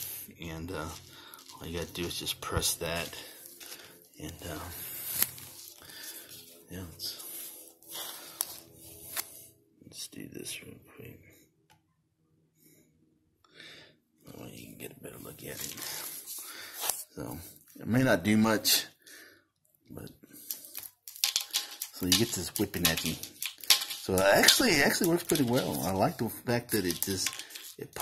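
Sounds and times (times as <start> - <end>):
plastic figure rustling: 0.6 - 9.4, 15.3 - 17.1, 20.4 - 28.0
small toy chain rattling: 20.6 - 28.0.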